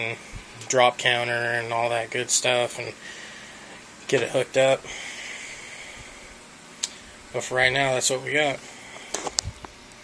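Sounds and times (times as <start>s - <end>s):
aquarium water and equipment hiss: 0.0s - 10.0s.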